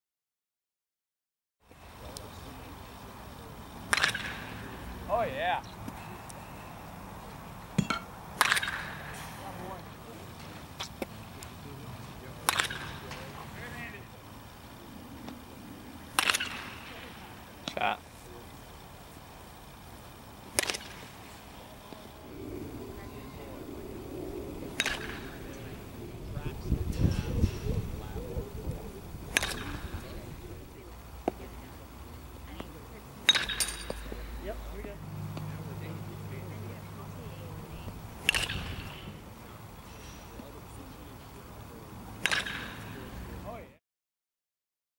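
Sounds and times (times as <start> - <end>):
baseball bat hitting ball: 3.9 - 4.6, 7.8 - 9.1, 12.4 - 13.3, 16.1 - 17.1, 20.6 - 21.0, 24.8 - 25.6, 29.3 - 30.2, 33.3 - 34.1, 38.2 - 39.1, 42.2 - 43.0.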